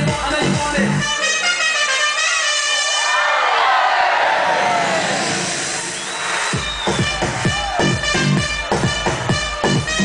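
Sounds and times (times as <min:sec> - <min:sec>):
heavy kick drum and bass: 0:00.0 - 0:01.1, 0:06.6 - 0:10.0
electronic dance music: 0:00.0 - 0:03.5, 0:04.4 - 0:10.0.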